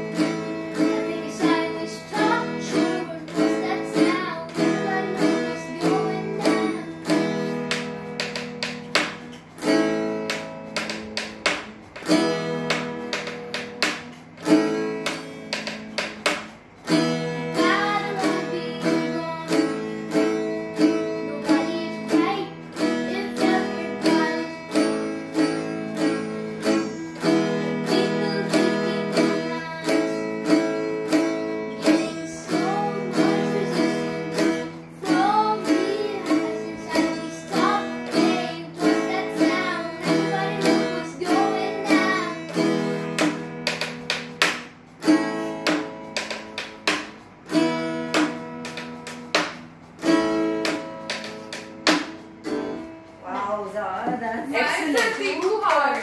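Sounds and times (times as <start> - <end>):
boy singing: 0.0 - 8.0, 17.4 - 43.4
acoustic guitar strumming: 0.0 - 56.0.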